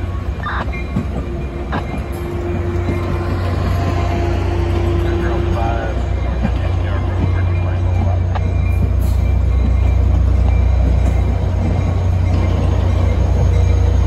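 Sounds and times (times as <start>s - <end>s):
train wheels rumbling on rails: 0.0s - 14.0s.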